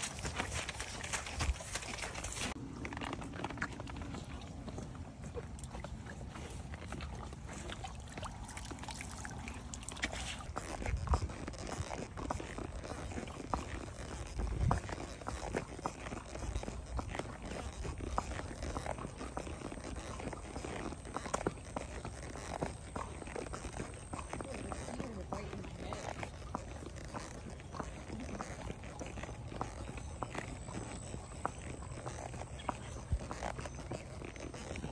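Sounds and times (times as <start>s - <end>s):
hoof clops: 0.0s - 34.9s.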